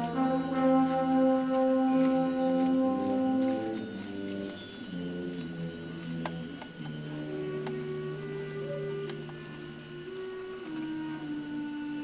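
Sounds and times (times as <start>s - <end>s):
light percussion strikes: 0.0s - 9.8s
concert band held wind notes: 0.0s - 12.0s.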